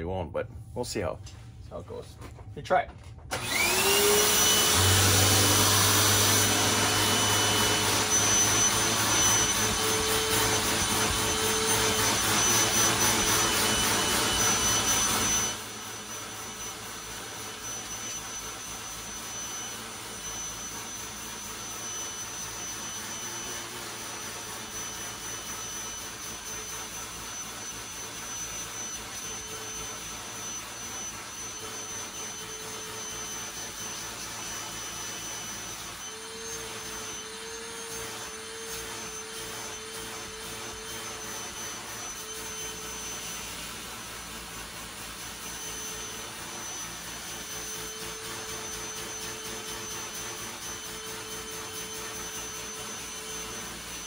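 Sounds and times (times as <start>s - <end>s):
vacuum cleaner rushing with high whine: 0.0s - 54.0s.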